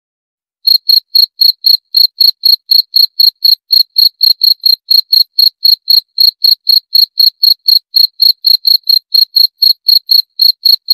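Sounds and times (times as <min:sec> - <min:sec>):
cricket chirping: 0:00.7 - 0:10.9.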